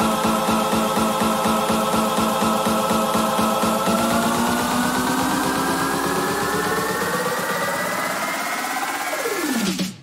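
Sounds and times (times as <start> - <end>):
buzzy synth riser: 0.0 - 9.7
electronic bass and beat: 0.0 - 10.0.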